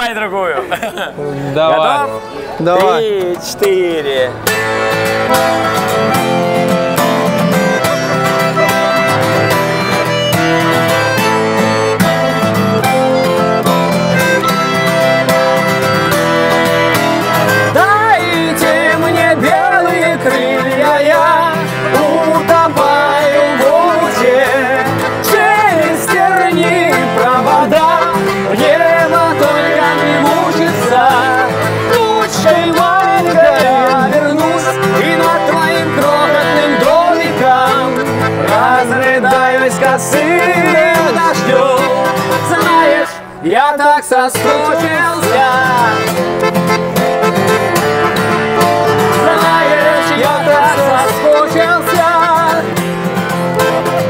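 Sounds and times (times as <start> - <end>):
acoustic guitar strumming: 1.6 - 54.0
button accordion chords: 4.3 - 43.4, 44.2 - 54.0
man singing: 17.6 - 46.5, 48.9 - 52.8.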